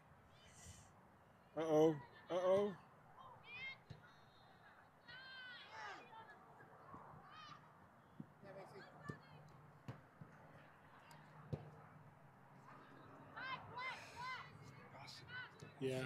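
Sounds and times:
distant shouting voices: 0:12.7 - 0:15.8.

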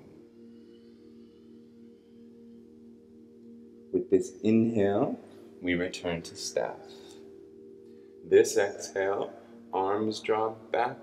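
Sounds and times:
faint low drone: 0:00.0 - 0:11.0.

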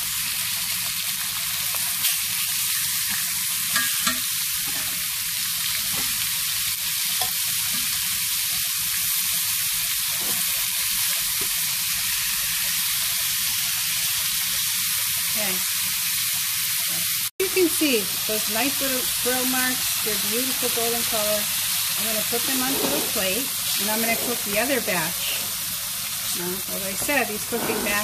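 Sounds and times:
meat sizzling in oil: 0:00.0 - 0:28.0.

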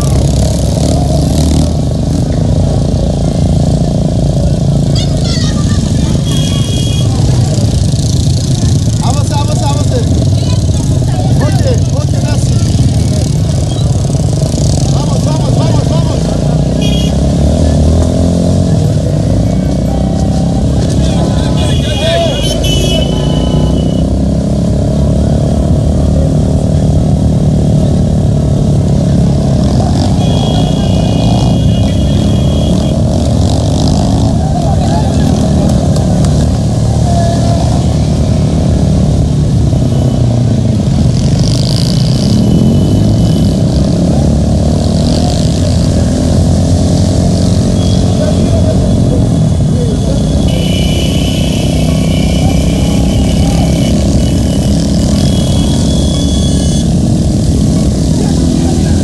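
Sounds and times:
people's voices: 0:00.0 - 0:41.0, 0:44.9 - 0:59.0
motorcycle engine running: 0:00.0 - 0:59.0.

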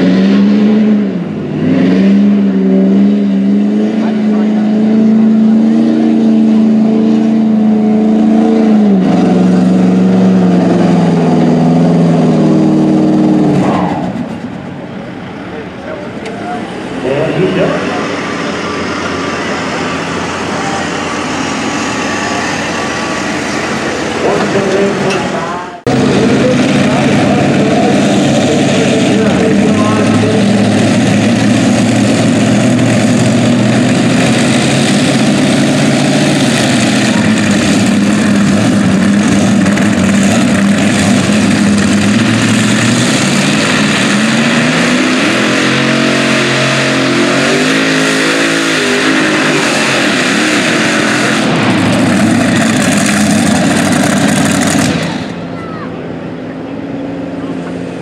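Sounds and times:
tractor engine revving: 0:00.0 - 0:58.0.

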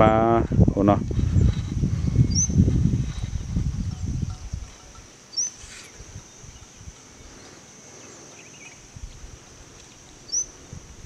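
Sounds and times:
high-pitched insect drone: 0:01.0 - 0:11.0
bird chirp: 0:01.2 - 0:08.9, 0:10.0 - 0:10.6.

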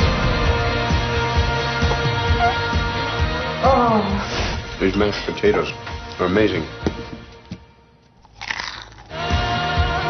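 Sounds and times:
crunching bite: 0:08.2 - 0:09.3.

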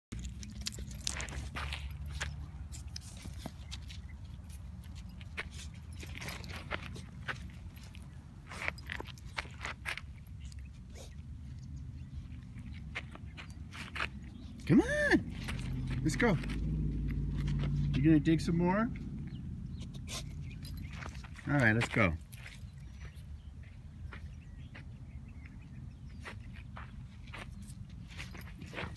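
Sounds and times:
puppy digging in gravelly dirt: 0:00.1 - 0:24.5, 0:26.0 - 0:28.9.

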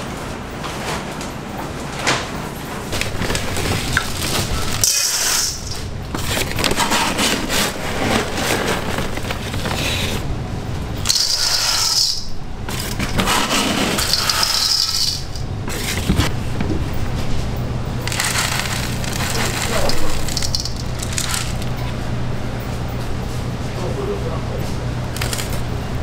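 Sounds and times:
sugar granules rattling in metal bowl: 0:03.0 - 0:06.6, 0:11.0 - 0:16.0, 0:18.0 - 0:21.9, 0:25.2 - 0:25.6.

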